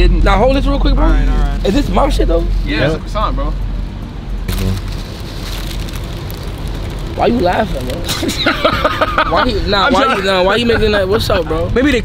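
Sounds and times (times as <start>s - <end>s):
paper wrapper crinkling: 4.5s - 8.4s.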